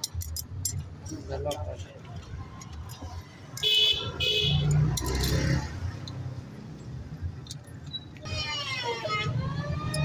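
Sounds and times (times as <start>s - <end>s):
background traffic rumble: 0.0s - 10.0s
vehicle horn beep: 3.6s - 4.7s.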